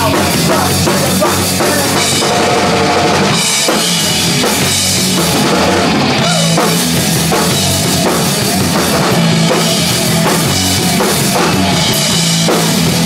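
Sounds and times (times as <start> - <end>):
drum kit: 0.0 - 13.0
punk rock band playing live: 0.0 - 13.0.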